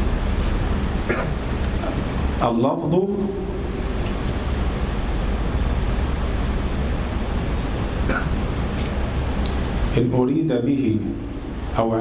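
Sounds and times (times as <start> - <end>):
steady rushing noise with low rumble: 0.0 - 12.0.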